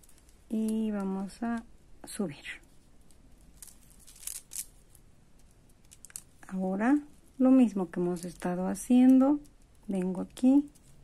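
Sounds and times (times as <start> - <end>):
plastic beads clicking: 3.0 - 6.5.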